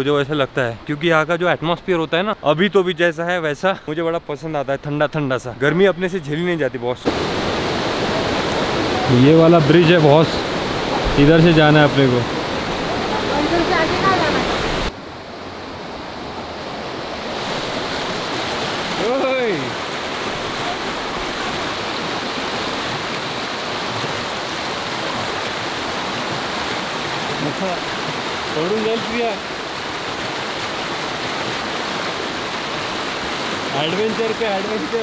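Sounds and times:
fast-flowing river rushing: 7.0 - 35.0.

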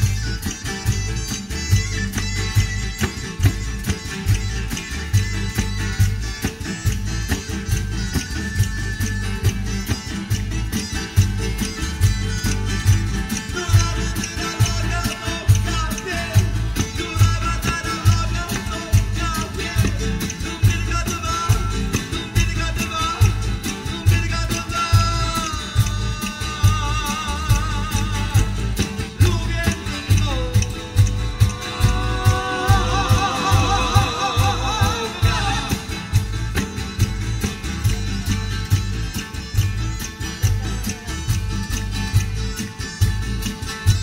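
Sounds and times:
acoustic guitars strummed: 0.0 - 44.0
drum kit beat: 0.0 - 44.0
person singing: 13.4 - 36.4.

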